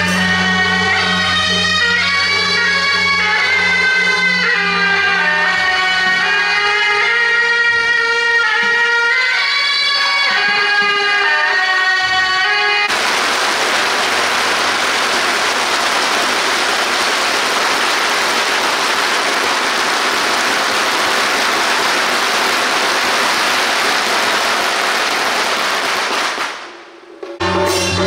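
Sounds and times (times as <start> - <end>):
firecrackers crackling: 12.9 - 27.1.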